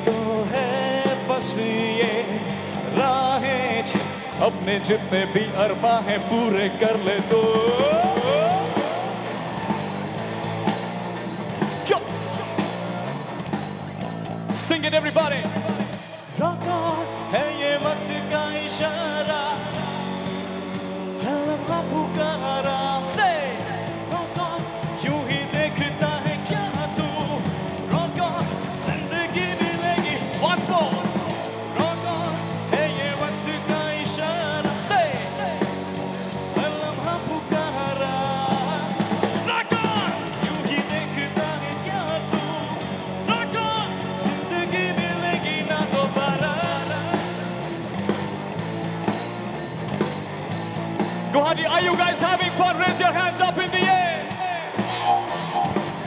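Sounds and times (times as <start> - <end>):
person singing: 0.0 - 9.7, 11.5 - 13.3, 14.5 - 47.6
rock band playing: 0.0 - 56.0.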